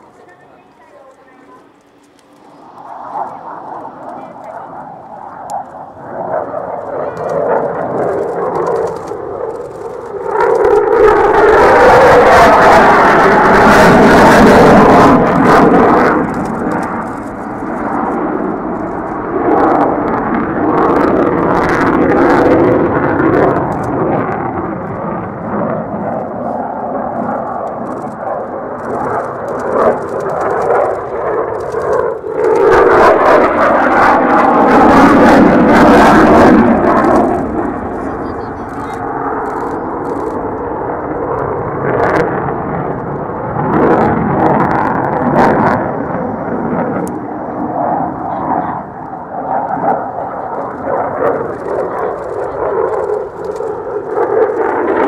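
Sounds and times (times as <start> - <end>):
fighter jet engines roaring: 0.0 - 55.0.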